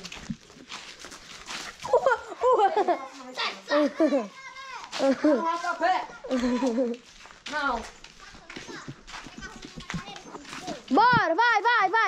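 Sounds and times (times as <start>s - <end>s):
faint children's voices: 1.9s - 12.0s.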